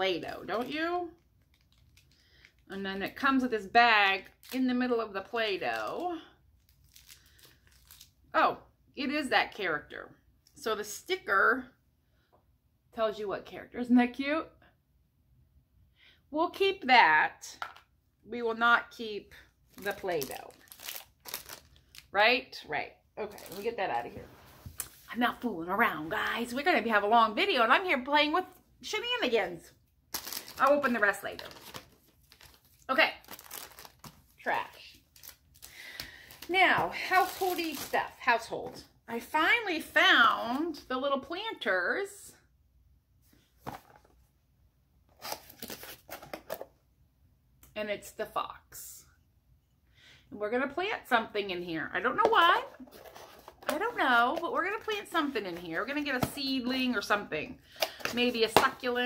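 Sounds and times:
plastic bag crinkling: 0:00.3 - 0:02.7, 0:06.6 - 0:08.1, 0:19.7 - 0:22.2, 0:23.2 - 0:24.0, 0:30.1 - 0:38.2
items rustling and knocking: 0:43.5 - 0:44.3, 0:52.2 - 0:54.5.

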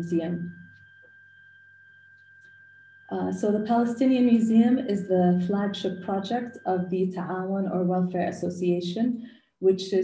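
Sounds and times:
high-pitched whine: 0:00.0 - 0:09.0
low hum: 0:00.0 - 0:09.1.

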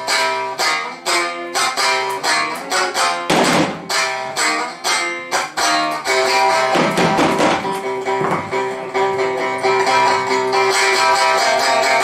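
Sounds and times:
plucked string instrument: 0:00.0 - 0:12.0.

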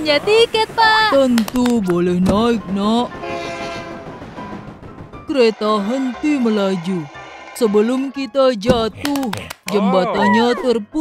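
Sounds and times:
train running noise: 0:00.0 - 0:09.2
cartoon train horn blast: 0:03.2 - 0:04.2.

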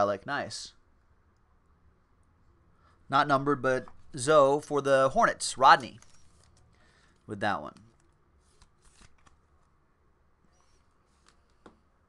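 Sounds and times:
cards rustling: 0:05.7 - 0:09.8, 0:10.6 - 0:11.8.

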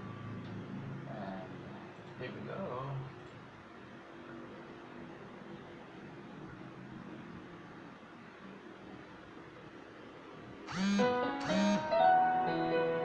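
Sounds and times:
faint room hiss: 0:00.0 - 0:13.0.

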